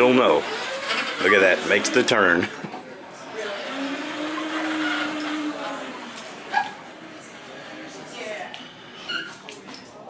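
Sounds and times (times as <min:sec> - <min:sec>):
robot drive motors whining: 0:00.4 - 0:02.1, 0:03.3 - 0:07.3.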